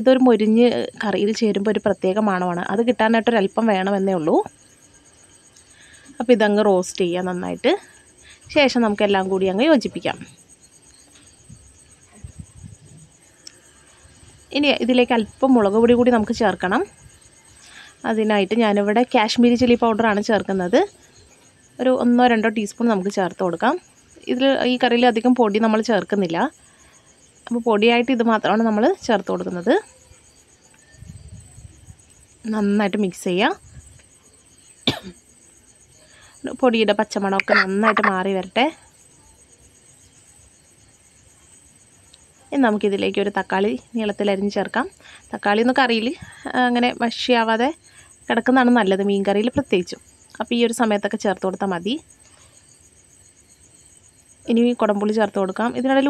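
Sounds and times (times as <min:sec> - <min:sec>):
high-pitched pulsing chirr: 0:37.3 - 0:38.8
person speaking: 0:37.4 - 0:38.4.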